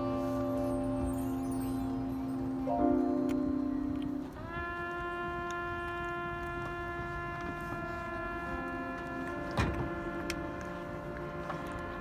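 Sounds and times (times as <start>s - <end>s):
marching band holding chord: 0.0s - 12.0s.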